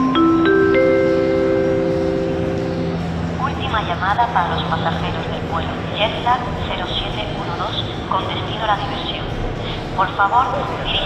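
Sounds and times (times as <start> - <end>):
rising four-note chime: 0.0 - 3.2
steady low hum: 0.0 - 11.0.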